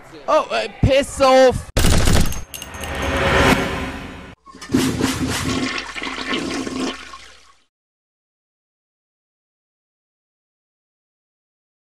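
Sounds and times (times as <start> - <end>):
sharp crash: 1.8 - 4.4.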